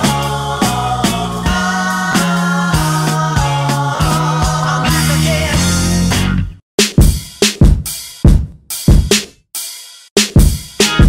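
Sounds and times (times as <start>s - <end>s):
drum hits: 6.8s - 9.3s, 10.2s - 11.0s.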